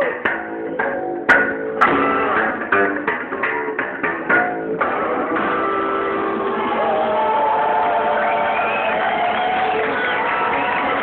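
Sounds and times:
audience cheering and whooping: 5.7 - 11.0
people shouting: 6.0 - 11.0
applause: 6.3 - 11.0.

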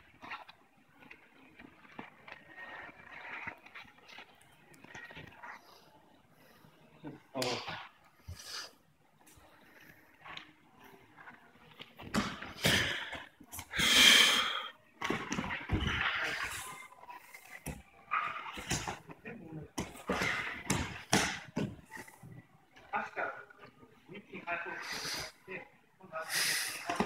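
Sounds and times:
footwork on mats: 11.6 - 22.9.

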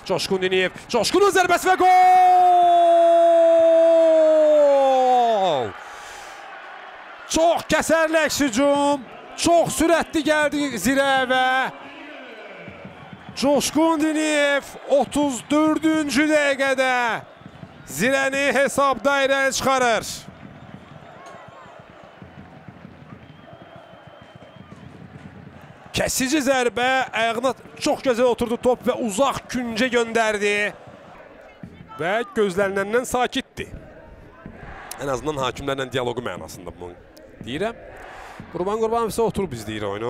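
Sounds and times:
man commentator's drawn-out goal call: 0.0 - 5.8, 7.3 - 17.3, 17.9 - 20.3, 26.0 - 30.8
players running on grass: 17.2 - 26.1
small crowd: 19.6 - 40.0
faint high whistle: 23.1 - 24.8.

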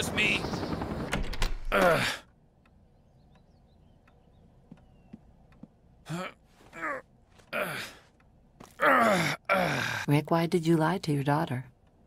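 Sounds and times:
man groaning: 1.7 - 2.2, 6.1 - 8.0, 8.8 - 10.0.

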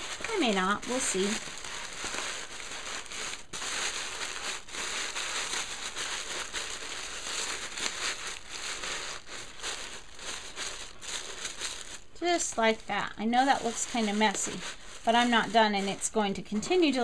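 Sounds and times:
tissue paper crinkling: 0.0 - 17.0.

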